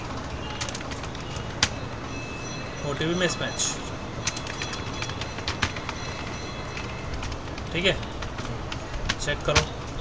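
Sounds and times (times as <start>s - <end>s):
keyboard keys clicking: 0.0s - 1.8s, 4.2s - 9.8s.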